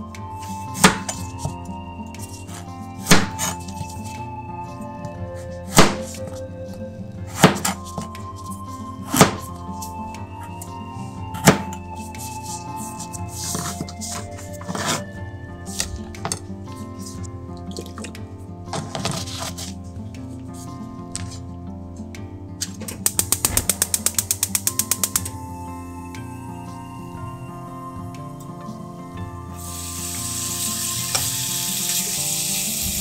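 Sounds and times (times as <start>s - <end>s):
light background music: 0.0s - 33.0s
knife striking plastic cutting board: 9.2s - 9.5s, 11.4s - 11.7s
gas hob igniter clicking: 23.0s - 25.4s.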